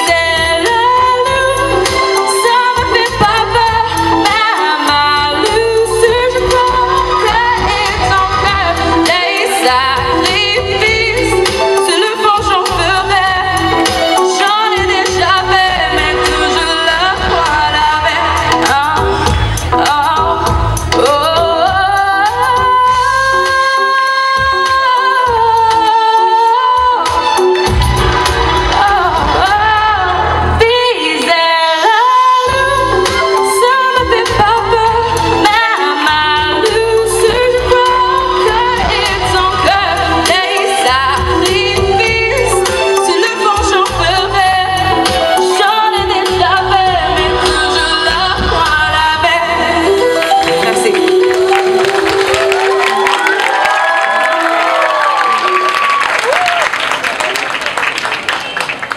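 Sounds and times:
girl singing into a microphone: 0:00.0 - 0:27.2, 0:28.8 - 0:52.0
audience applauding: 0:50.1 - 0:58.9
whoops and calls: 0:52.3 - 0:56.8.

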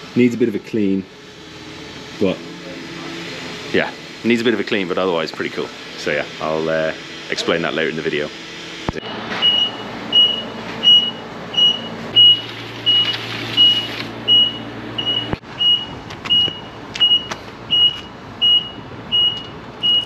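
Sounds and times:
low motor hum: 0:00.0 - 0:20.0
forklift warning alarm beeping: 0:09.0 - 0:20.0.

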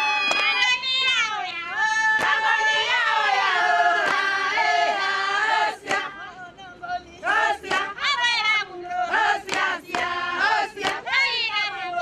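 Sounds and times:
women singing high gliding calls: 0:00.0 - 0:12.0.

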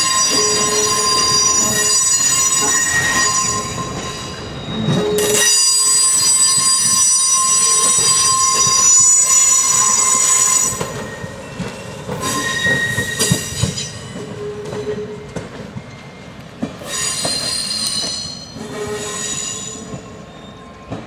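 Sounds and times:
train wheels squealing on rails: 0:00.0 - 0:21.0.

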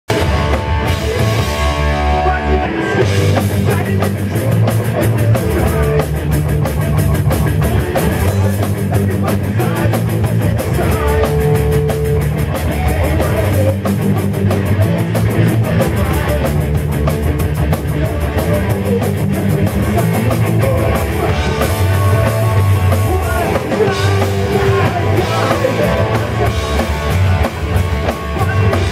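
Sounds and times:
drum kit beat: 0:00.1 - 0:28.9
electric guitars: 0:00.1 - 0:28.9.

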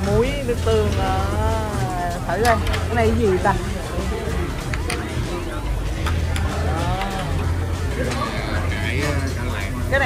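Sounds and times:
background music: 0:00.0 - 0:10.0
faint background voices: 0:00.0 - 0:10.0.

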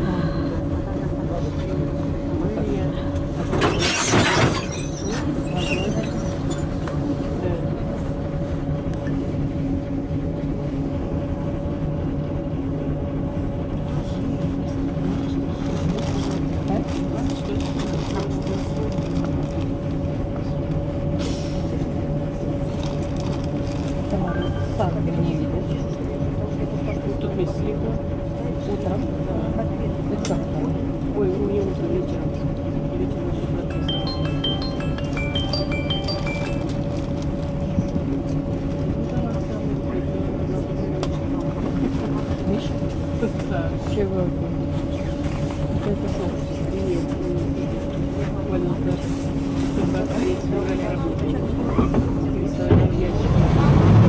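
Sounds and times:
bus engine idling: 0:00.0 - 0:54.0.

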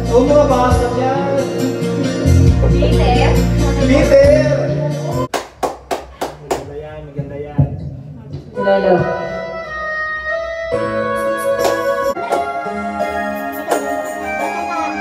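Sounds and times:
backing track through speakers: 0:00.0 - 0:05.3
electronic keyboard chords: 0:00.0 - 0:05.3, 0:09.0 - 0:15.0.

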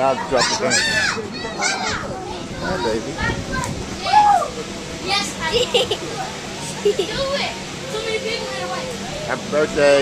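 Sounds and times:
children calling out and chattering: 0:00.0 - 0:10.0.

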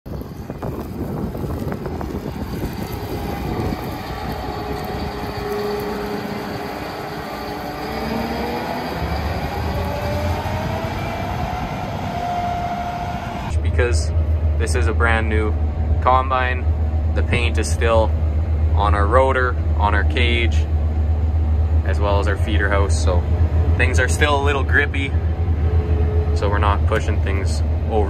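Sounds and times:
combine harvester rumbling: 0:00.1 - 0:28.0
machine whine rising in pitch: 0:00.2 - 0:15.1.

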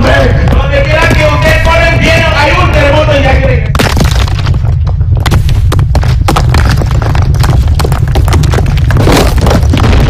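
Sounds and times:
deep rumble: 0:00.0 - 0:10.0
falling debris crashing: 0:03.7 - 0:10.0.

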